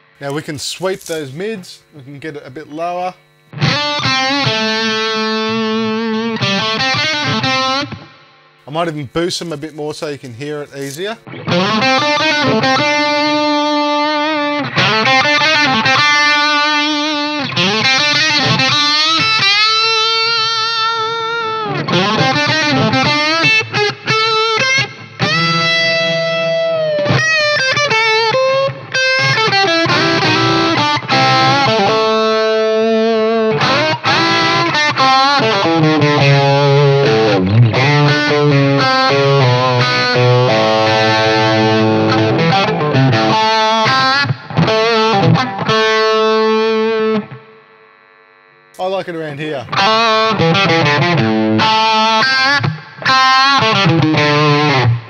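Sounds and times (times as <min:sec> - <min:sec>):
distorted electric guitar lead: 0:00.0 - 0:55.0.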